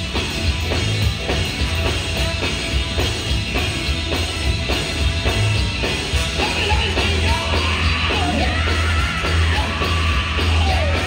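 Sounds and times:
live band playing: 0.0 - 11.0
man singing into a microphone: 6.4 - 11.0.

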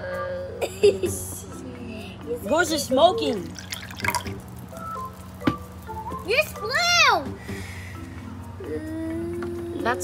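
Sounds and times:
liquid pouring into plastic cup: 3.3 - 5.3.

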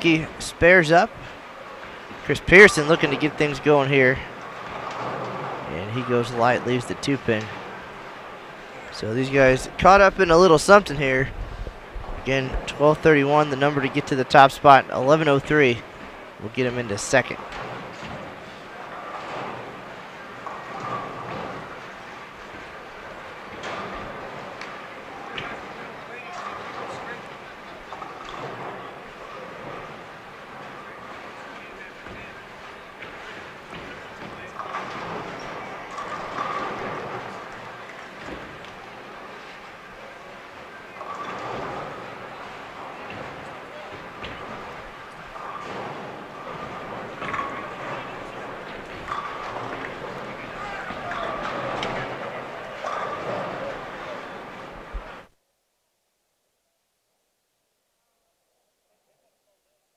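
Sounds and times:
bowling balls rolling: 0.0 - 55.3
bowling pins clattering: 0.0 - 55.3
crowd chatter: 0.0 - 55.3.

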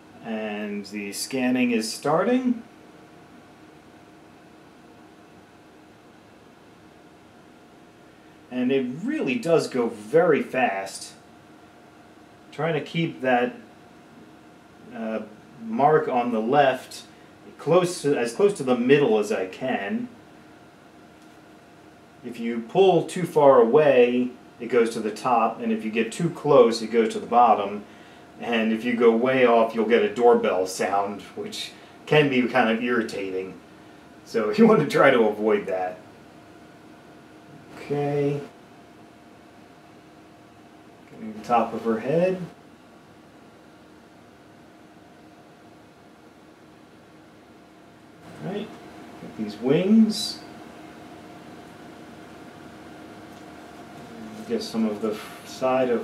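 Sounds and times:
faint steady hiss: 0.0 - 56.0
low even hum: 0.0 - 56.0.

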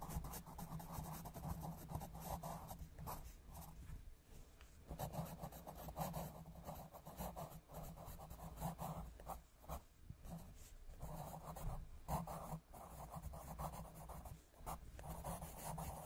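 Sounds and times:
pencil scratching on paper: 0.0 - 3.8, 4.9 - 16.0.

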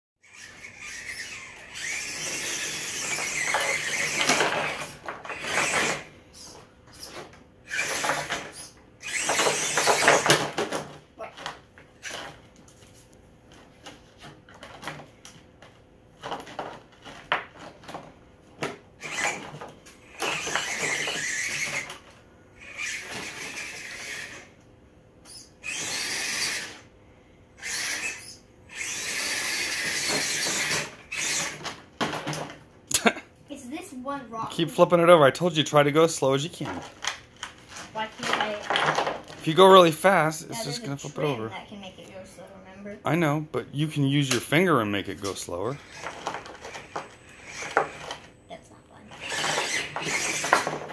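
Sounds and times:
rc car scraping and rattling: 0.2 - 10.9, 11.9 - 15.1, 19.0 - 24.6, 25.3 - 26.9, 27.6 - 32.6, 36.4 - 41.5, 45.2 - 48.4, 49.0 - 50.9
electric motor and gears whining: 0.2 - 12.4, 18.7 - 24.6, 25.3 - 27.0, 27.6 - 32.6, 34.0 - 43.4, 44.6 - 50.9
rc car clacking on rocks: 0.8 - 6.1, 7.7 - 10.7, 19.0 - 19.4, 20.2 - 22.0, 27.6 - 31.6, 37.0 - 39.2, 49.1 - 50.9.

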